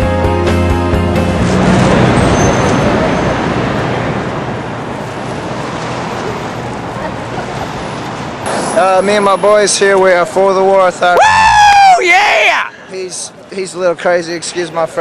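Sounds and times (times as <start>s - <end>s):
city street traffic: 0.0s - 15.0s.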